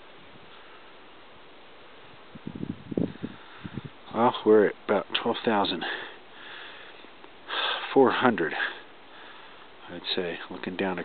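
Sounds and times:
wind hiss on microphone: 0:01.8 - 0:05.1
wind gusts bumping microphone: 0:02.0 - 0:04.9.

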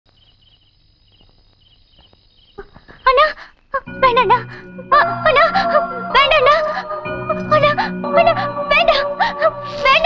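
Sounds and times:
crickets chirping: 0:00.1 - 0:10.0
woman singing: 0:03.9 - 0:10.0.

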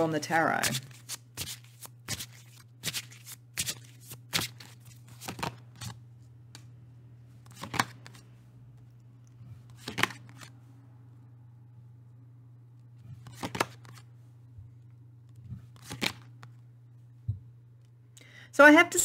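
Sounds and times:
cards shuffling: 0:00.6 - 0:06.7, 0:07.4 - 0:09.0, 0:09.6 - 0:10.6, 0:13.0 - 0:14.1, 0:15.3 - 0:16.6
low hum: 0:10.3 - 0:13.3.

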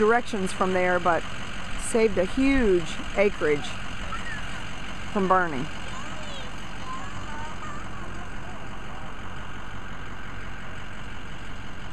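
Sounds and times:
motor vehicle driving drone: 0:00.0 - 0:11.9.

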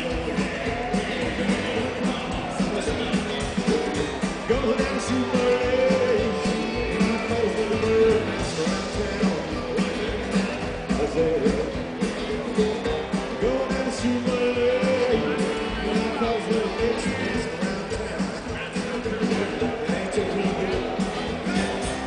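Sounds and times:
acoustic guitar: 0:00.0 - 0:22.0
drums: 0:00.0 - 0:22.0
electric guitar: 0:00.0 - 0:22.0
man singing: 0:00.0 - 0:22.0
upright bass: 0:00.0 - 0:22.0.

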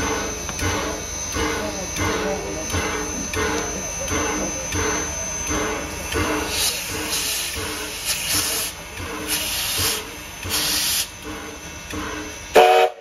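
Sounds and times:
steam locomotive chuffing: 0:00.0 - 0:13.0
loud steam whistle blast: 0:12.5 - 0:13.0.

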